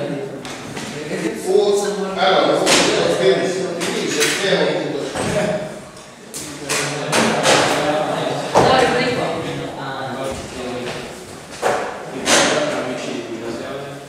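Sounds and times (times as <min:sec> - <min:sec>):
classroom chatter: 0:00.0 - 0:14.0.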